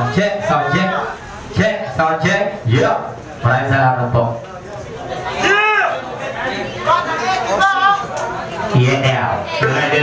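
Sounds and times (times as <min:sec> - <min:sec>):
crowd chatter in a bar: 0:00.0 - 0:10.0.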